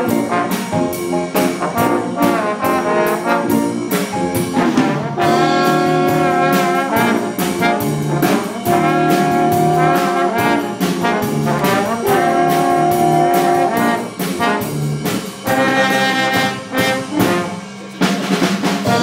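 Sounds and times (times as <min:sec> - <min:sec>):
brass section playing chords: 0:00.0 - 0:19.0
steady drum beat: 0:00.0 - 0:19.0.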